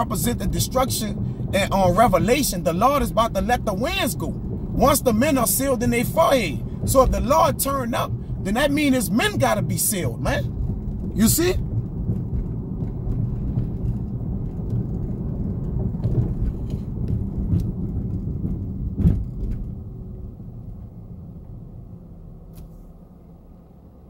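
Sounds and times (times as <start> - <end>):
car road and engine rumble: 0.0 - 24.0
thump: 19.0 - 19.7.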